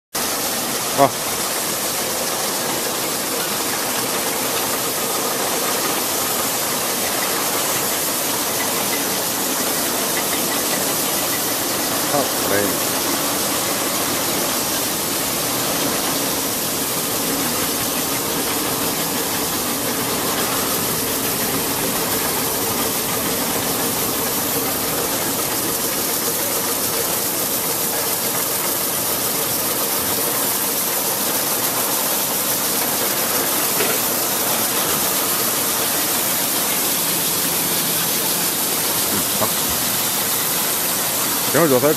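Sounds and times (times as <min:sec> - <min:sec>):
water spraying: 0:00.2 - 0:41.9.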